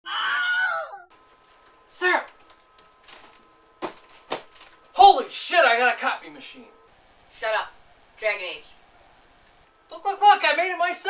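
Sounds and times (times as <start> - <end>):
person screaming: 0.0 - 1.1
faint steady hum: 1.1 - 11.0.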